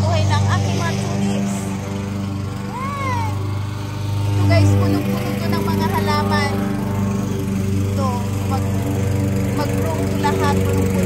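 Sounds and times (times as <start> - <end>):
lawn mower engine running: 0.0 - 11.0.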